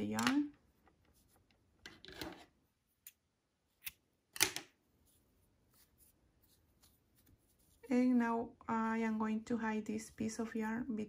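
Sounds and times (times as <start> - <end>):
yarn handling sounds: 4.6 - 8.0.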